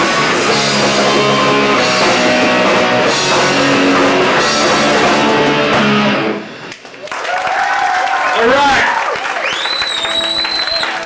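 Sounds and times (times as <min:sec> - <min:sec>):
punk band guitars and bass ringing: 0:00.0 - 0:06.7.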